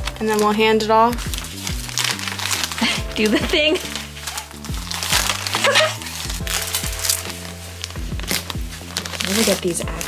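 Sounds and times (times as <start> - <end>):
plastic mailer crinkling: 0.0 - 10.0.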